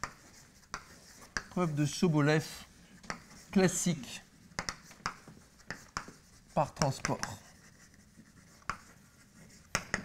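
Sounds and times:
chalk tap: 0.0 - 2.0, 3.0 - 3.7, 4.5 - 10.0
chalk scraping on blackboard: 0.0 - 3.9, 4.6 - 10.0.

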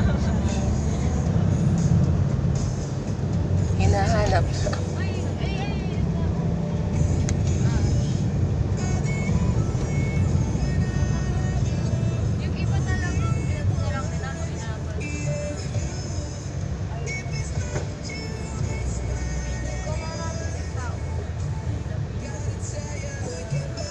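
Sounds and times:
car engine and tyres rumbling: 0.0 - 23.9
music playing: 0.0 - 23.9.

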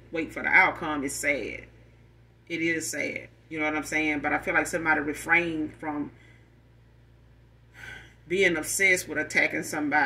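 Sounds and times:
person talking: 0.0 - 1.7, 2.5 - 6.2, 8.2 - 10.0
faint low hum: 0.0 - 10.0.

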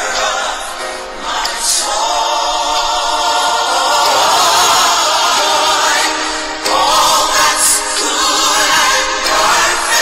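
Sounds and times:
choir singing long note: 0.0 - 10.0.

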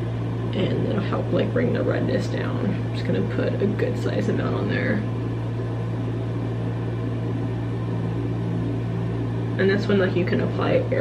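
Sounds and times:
low motor hum: 0.0 - 11.0.

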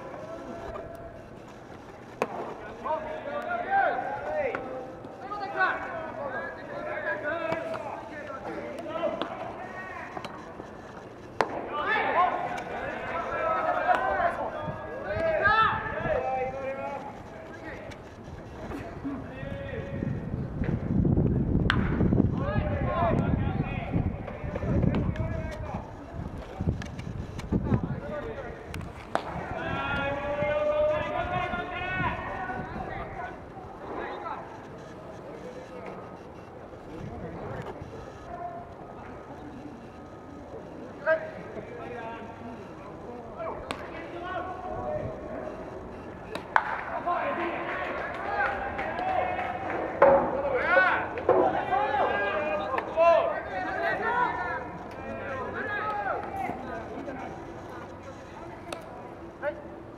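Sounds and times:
people calling out: 11.4 - 20.3, 28.0 - 36.0, 37.7 - 59.7.

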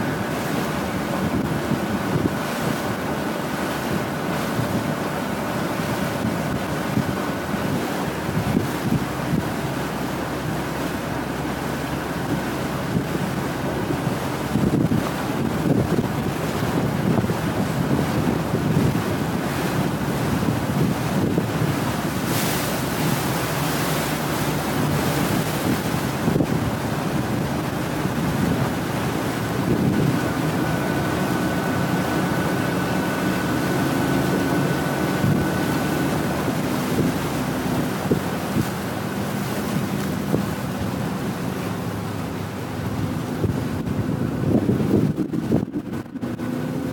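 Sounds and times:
boat engine: 0.0 - 46.9
water rushing along hull: 0.0 - 46.9
wind buffeting microphone: 0.0 - 46.9.

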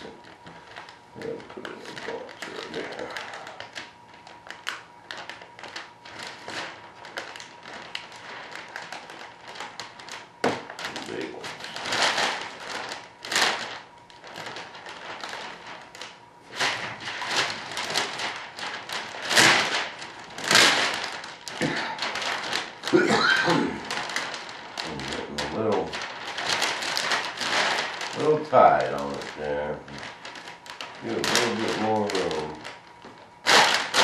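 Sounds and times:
plastic film crinkling: 0.0 - 34.0.

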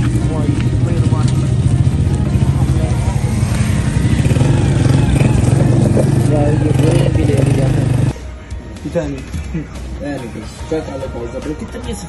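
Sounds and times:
motorcycle engine running: 0.0 - 8.2
people's voices: 0.0 - 12.0.

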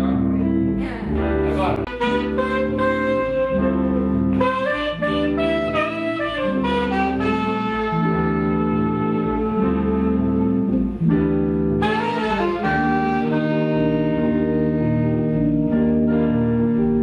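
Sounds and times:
electric guitar chords: 0.0 - 17.0
low bass line: 0.0 - 17.0
saxophone melody: 0.0 - 17.0.

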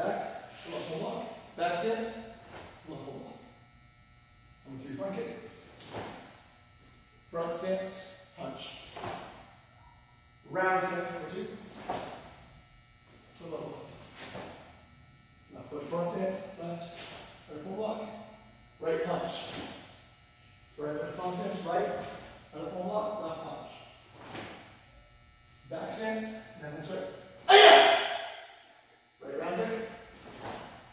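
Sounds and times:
man yelling short calls: 27.4 - 28.4.

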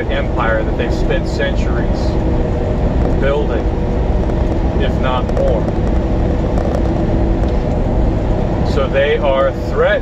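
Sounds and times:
truck engine and road noise: 0.0 - 10.0.

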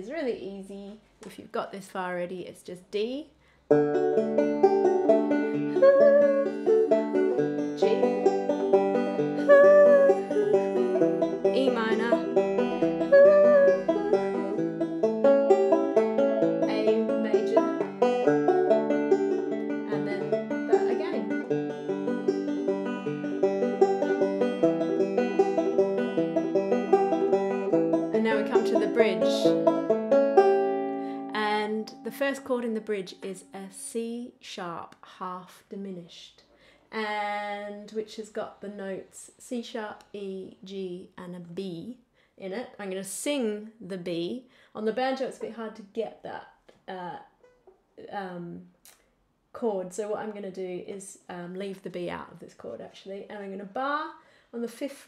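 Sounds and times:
banjo fingerpicking: 3.6 - 33.5.

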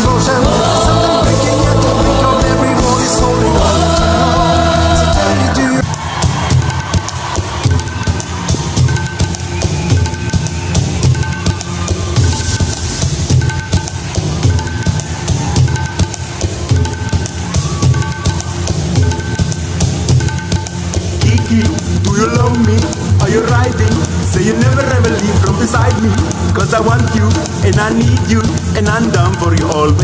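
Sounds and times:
drum-kit beat: 0.0 - 30.0.

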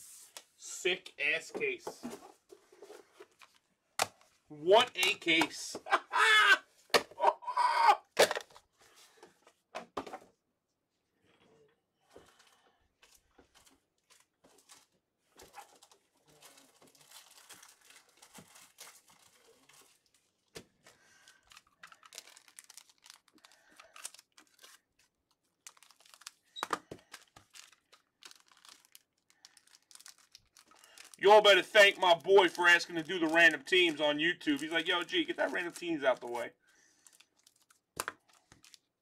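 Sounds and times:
plastic sleeves crinkling: 13.0 - 39.0.

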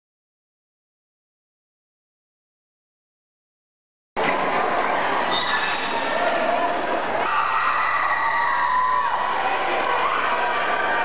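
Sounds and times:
crowd shouting and calling: 4.2 - 11.0.

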